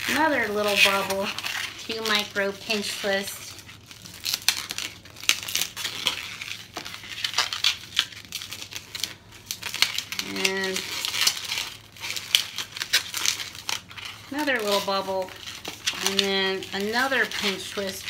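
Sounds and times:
balloon rubbing and crinkling: 0:00.0 - 0:18.0.

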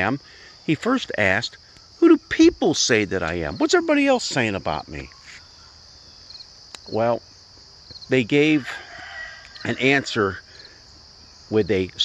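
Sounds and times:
high-pitched insect chorus: 0:00.0 - 0:12.0
insect chirps: 0:00.0 - 0:12.0.

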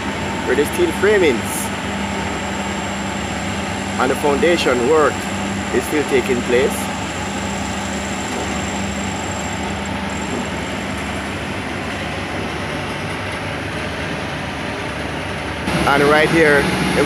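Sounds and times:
low engine hum: 0:00.0 - 0:17.0
traffic din: 0:00.0 - 0:17.0.

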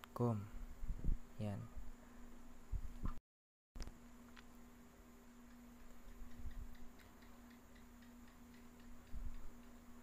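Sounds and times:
steady low hum: 0:00.0 - 0:03.2, 0:03.8 - 0:10.0
faint regular ticking: 0:05.4 - 0:10.0.

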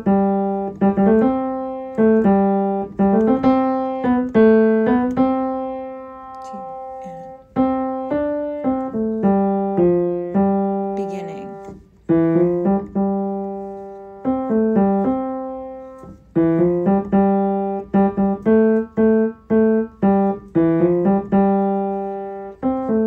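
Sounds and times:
piano chords ringing: 0:00.0 - 0:23.0.

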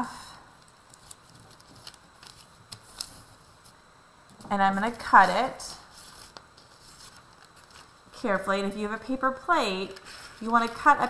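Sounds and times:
paper rustling: 0:00.6 - 0:03.8, 0:05.9 - 0:08.2, 0:09.9 - 0:11.0.

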